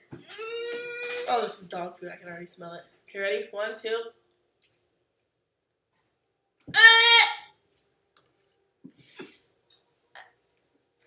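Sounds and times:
person crying out in disgust: 0.3 - 1.3.

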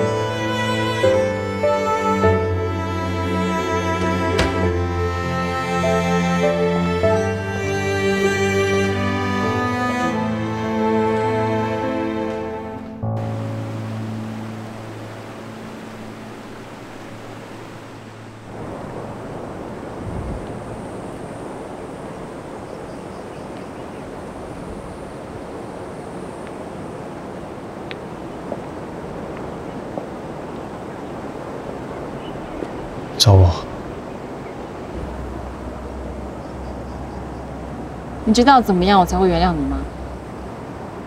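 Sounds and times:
soft background music: 0.0 - 19.6
wind and surf hiss: 0.0 - 41.0.

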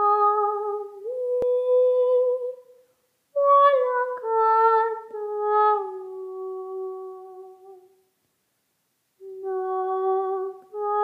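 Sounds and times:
woman singing long note: 9.2 - 11.0.

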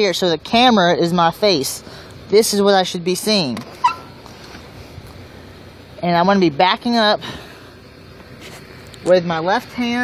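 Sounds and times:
tractor diesel engine running: 0.0 - 10.0.

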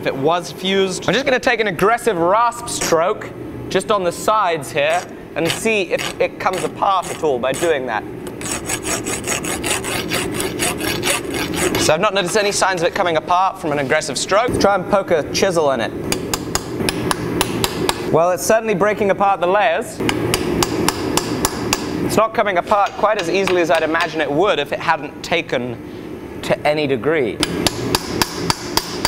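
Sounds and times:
hand rasp scraping metal: 4.9 - 12.7.

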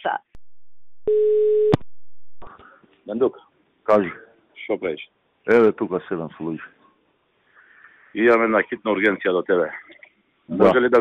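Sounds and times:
telephone tone: 1.1 - 1.8.

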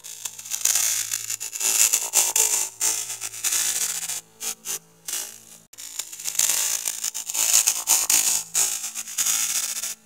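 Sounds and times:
harsh distorted hiss: 0.0 - 10.0.

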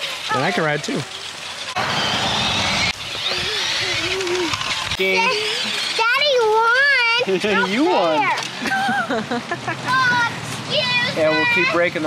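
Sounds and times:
rumbling rush: 1.7 - 6.0
children shouting: 1.7 - 6.8.

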